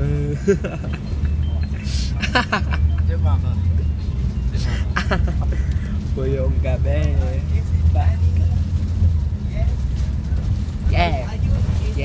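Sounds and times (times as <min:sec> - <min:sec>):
vehicle interior rumble: 0:00.0 - 0:12.0
people laughing: 0:00.2 - 0:03.2, 0:04.6 - 0:05.9.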